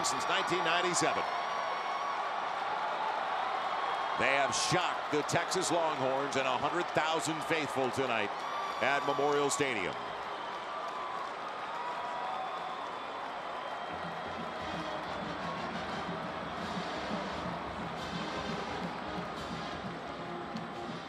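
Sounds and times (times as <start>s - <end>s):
stadium crowd noise: 0.0s - 21.0s
music playing: 13.9s - 21.0s.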